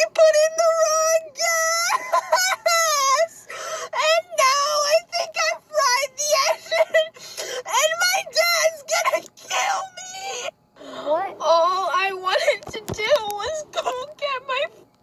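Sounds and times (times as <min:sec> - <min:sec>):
woman crying and wailing: 0:00.0 - 0:14.6.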